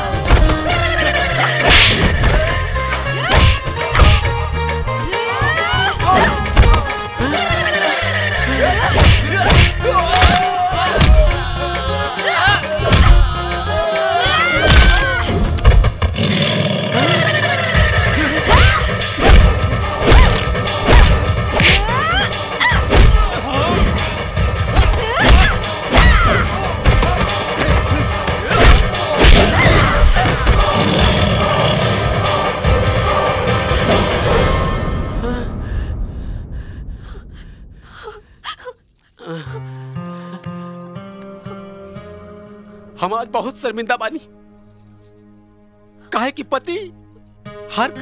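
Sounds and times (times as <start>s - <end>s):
background music: 0.0s - 48.0s
punch and slap sound effects: 1.6s - 2.4s, 3.3s - 4.3s, 9.0s - 11.3s, 18.5s - 21.9s, 22.9s - 23.3s, 28.5s - 30.6s
soft background music: 39.2s - 48.0s.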